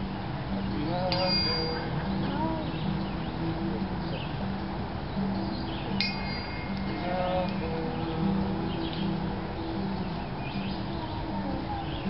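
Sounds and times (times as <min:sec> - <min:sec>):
low held musical notes: 0:00.0 - 0:12.0
small chime ringing: 0:01.1 - 0:02.0, 0:06.0 - 0:07.8.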